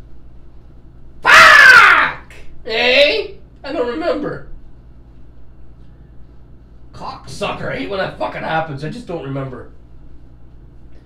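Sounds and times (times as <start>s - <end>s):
man yelling: 1.2s - 4.3s.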